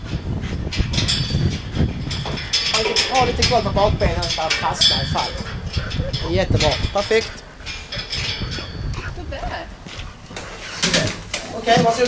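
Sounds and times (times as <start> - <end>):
footsteps on steel staircase: 6.7 - 12.0.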